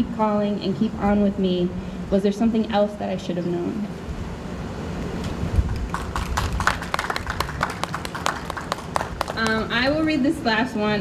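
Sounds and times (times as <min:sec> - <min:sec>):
low steady rumble: 0:00.0 - 0:11.0
audience clapping: 0:05.6 - 0:09.8.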